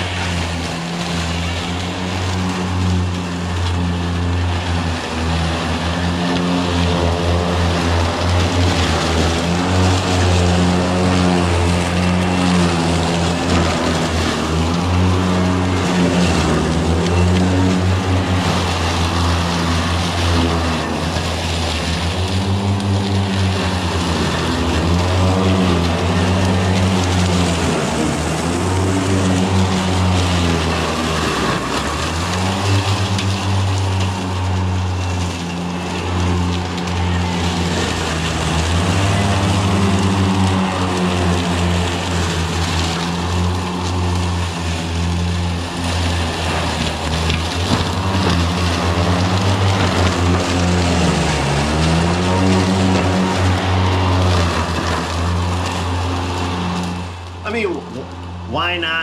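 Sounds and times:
electric mower humming: 0.0 - 59.0.

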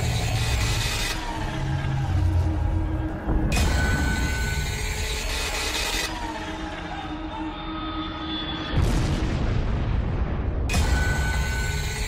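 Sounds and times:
hum with high tones: 0.0 - 8.7.

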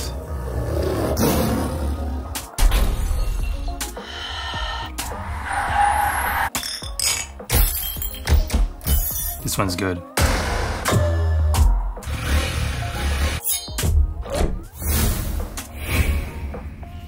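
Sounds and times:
tiger roar: 0.0 - 2.1
background music: 0.0 - 17.0
car tyres squealing: 5.0 - 6.5.

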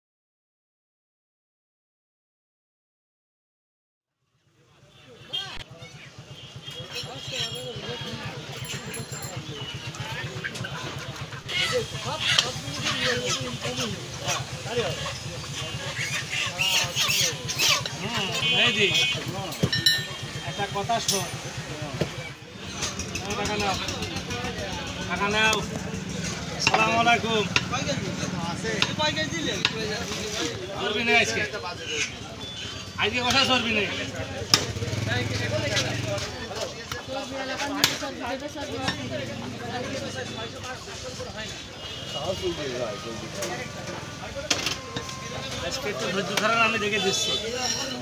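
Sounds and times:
voices: 4.6 - 48.0
people talking: 4.7 - 48.0
engine idling: 17.0 - 30.0.

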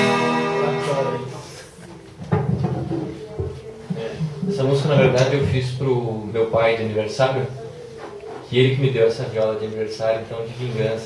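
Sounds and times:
acoustic guitar chord ringing: 0.0 - 1.4.

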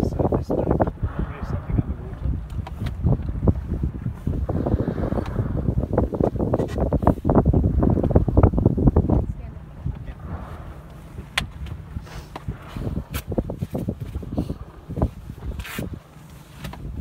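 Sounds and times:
water lapping at hull: 0.0 - 17.0
wind buffeting microphone: 0.0 - 17.0.

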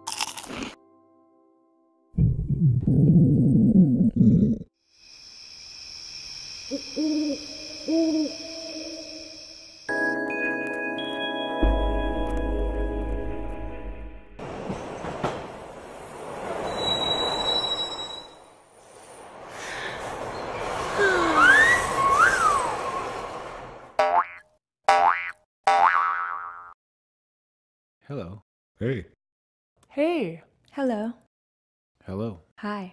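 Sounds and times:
steady high-pitched hiss: 5.0 - 9.8
owl-like hooting: 6.7 - 9.4
rushing whoosh with whistle: 15.6 - 23.6.

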